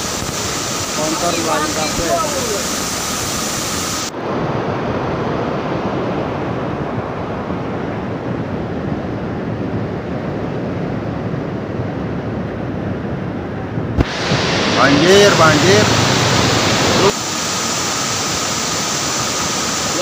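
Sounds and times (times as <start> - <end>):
flooded river rushing: 0.0 - 9.7, 13.5 - 20.0.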